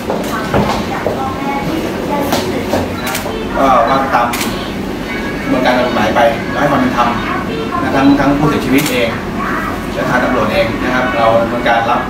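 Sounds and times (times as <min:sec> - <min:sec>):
indistinct voices: 0:00.0 - 0:12.0
room bustle: 0:00.0 - 0:12.0.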